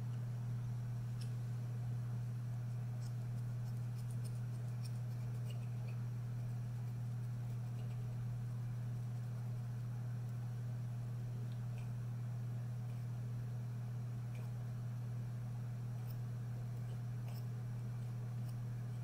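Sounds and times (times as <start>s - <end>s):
steady low hum: 0.0s - 19.0s
scissors snipping hair: 16.8s - 17.5s.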